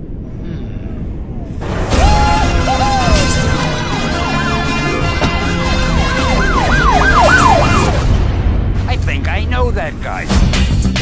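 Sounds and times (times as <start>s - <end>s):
siren yelping: 2.0s - 8.1s.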